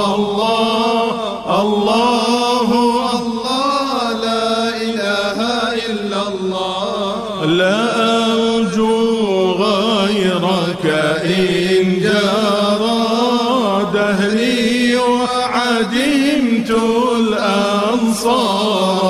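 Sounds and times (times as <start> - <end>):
voices chanting a hymn: 0.0 - 19.0.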